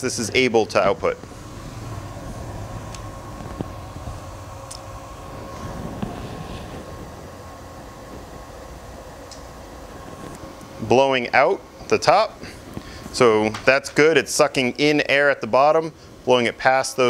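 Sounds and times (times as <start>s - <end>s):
cooling fans whirring: 0.0s - 17.0s.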